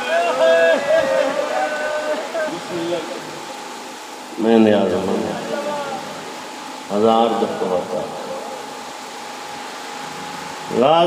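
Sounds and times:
loudspeaker hiss: 0.0s - 11.0s.

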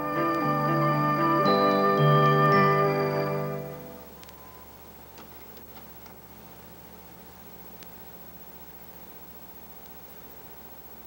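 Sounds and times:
videotape hiss and hum: 0.0s - 11.0s.

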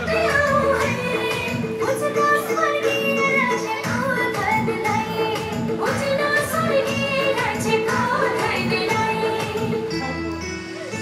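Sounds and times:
woman singing: 0.0s - 10.4s
song with steady beat: 0.0s - 11.0s.

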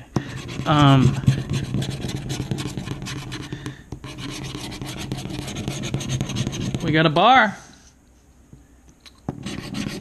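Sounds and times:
scratch card being scraped: 0.2s - 6.9s, 9.3s - 10.0s.

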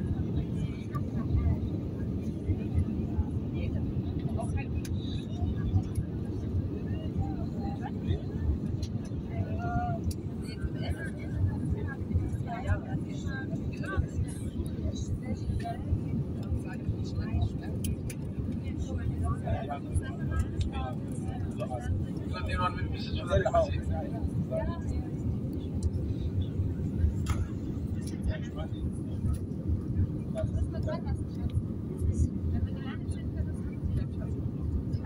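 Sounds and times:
airliner cabin engine rumble: 0.0s - 35.0s
passengers' voices: 0.0s - 35.0s.

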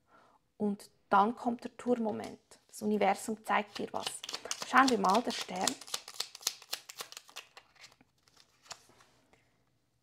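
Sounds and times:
cards being shuffled: 3.7s - 9.1s.

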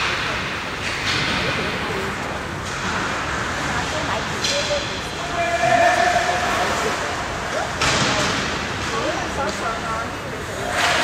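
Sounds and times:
arena chatter: 0.0s - 11.0s.

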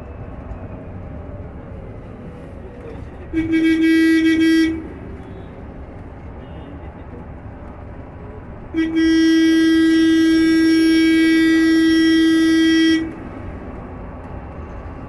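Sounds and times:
bus road and tyre noise: 0.0s - 15.0s
vehicle horn long note: 3.3s - 5.5s, 8.8s - 13.2s.

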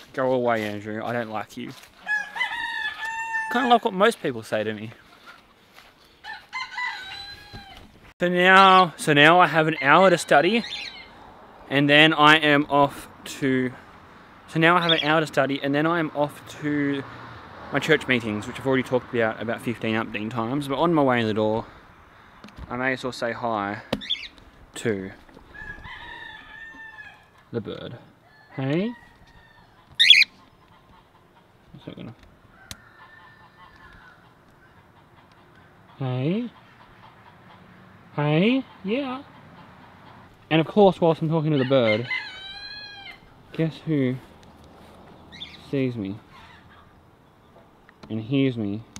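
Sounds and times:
domestic fowl calling: 1.7s - 3.9s, 5.0s - 8.0s, 25.4s - 27.5s, 28.2s - 31.7s, 32.4s - 40.4s, 41.2s - 43.7s, 46.2s - 47.1s
goose honking: 29.9s - 31.2s.

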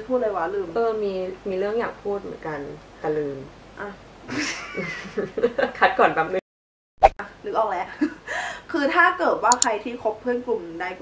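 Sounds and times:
laughter in quick bursts: 4.3s - 5.6s.

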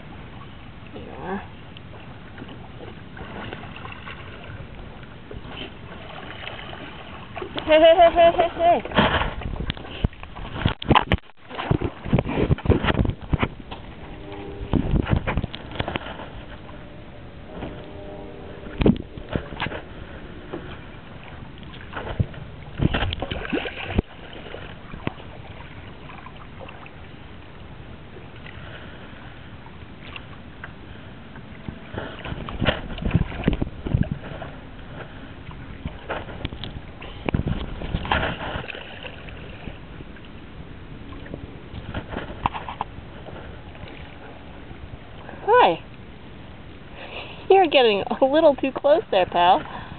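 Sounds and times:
water splashing against paddleboard: 1.8s - 29.2s, 30.0s - 45.8s.

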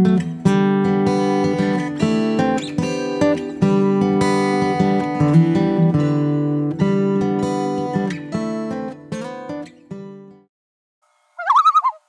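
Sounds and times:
acoustic guitar chord: 0.0s - 10.4s
bird-like wavering call: 11.4s - 12.0s.

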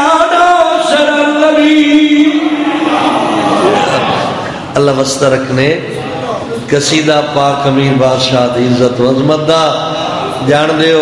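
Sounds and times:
man chanting: 0.0s - 5.8s.

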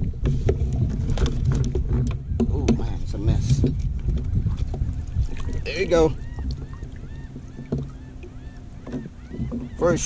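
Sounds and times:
wind rumble on microphone: 0.0s - 8.0s.

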